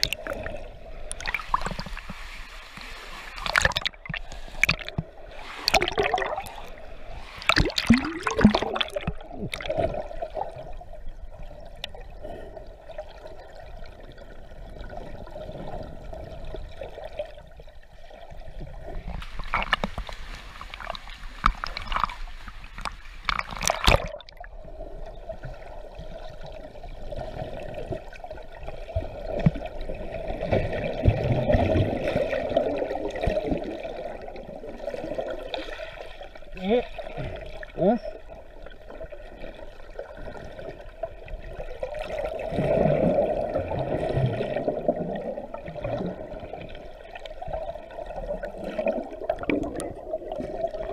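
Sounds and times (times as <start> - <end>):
water splashing: 0.0 - 10.8, 18.7 - 24.6
muffled underwater wash: 0.0 - 50.9.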